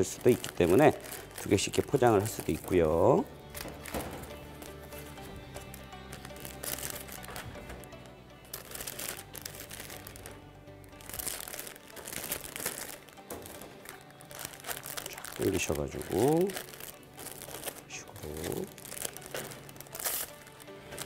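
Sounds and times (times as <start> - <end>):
plastic bags crinkling: 0.0 - 21.0
quiet background music: 0.0 - 21.0.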